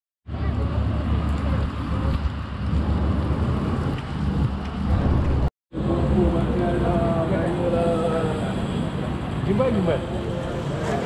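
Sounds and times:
low outdoor rumble: 0:00.3 - 0:08.8.

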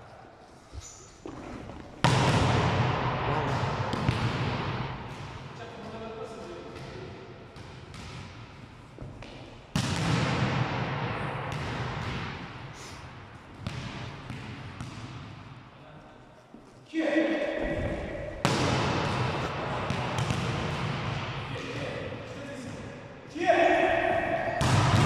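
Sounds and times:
volleyball smack echoing: 0:02.0 - 0:05.3, 0:09.2 - 0:12.4, 0:17.6 - 0:21.4, 0:24.6 - 0:25.0.

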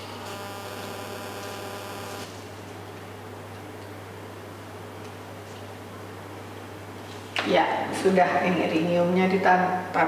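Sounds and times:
bright buzzing tone: 0:00.0 - 0:02.4
steady electrical hum: 0:00.0 - 0:10.0.

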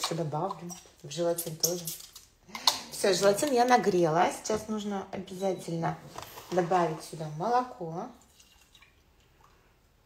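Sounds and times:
milk pouring into saucepan: 0:08.2 - 0:09.8.

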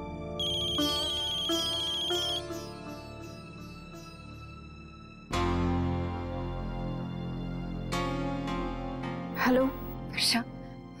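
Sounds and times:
soft background music: 0:00.0 - 0:11.0
mobile phone ringtone: 0:00.4 - 0:02.5.

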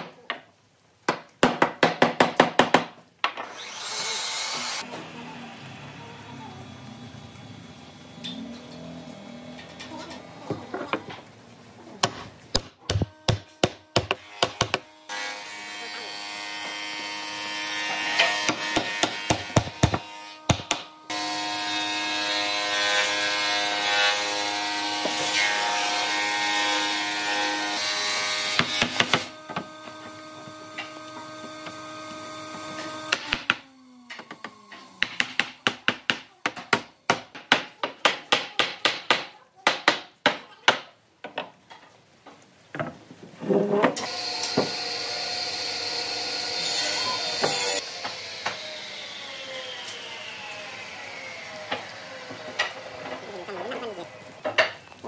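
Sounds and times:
hammer knocking wood: 0:12.0 - 0:14.8, 0:18.4 - 0:20.9.

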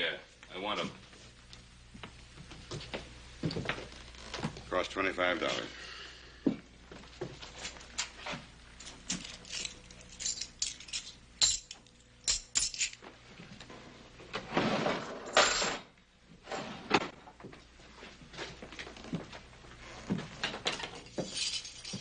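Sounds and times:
small metal objects clinking: 0:08.8 - 0:13.0, 0:20.8 - 0:22.0.

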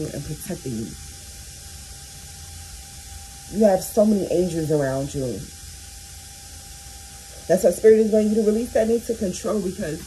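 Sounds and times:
faint steady tone: 0:00.0 - 0:10.0
low hum: 0:00.0 - 0:10.0
steady background hiss: 0:00.0 - 0:10.0.

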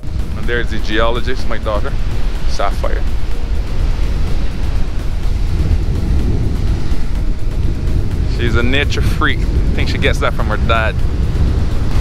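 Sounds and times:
surf breaking on beach: 0:00.0 - 0:12.0
wind buffeting microphone: 0:00.0 - 0:12.0.

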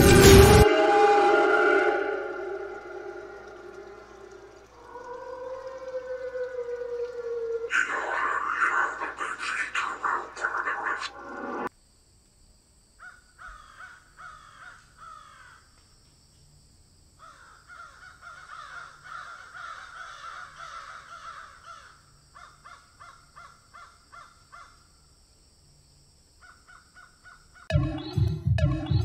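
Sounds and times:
crows cawing: 0:13.0 - 0:15.7, 0:17.2 - 0:24.8, 0:26.4 - 0:27.7.

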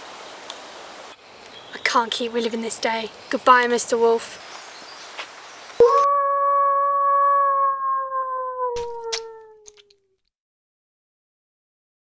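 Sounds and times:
wolf howl: 0:05.8 - 0:10.0.

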